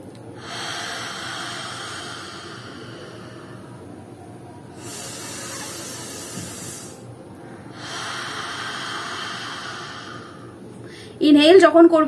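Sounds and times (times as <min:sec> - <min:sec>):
woman breathing deeply: 0:00.0 - 0:11.2.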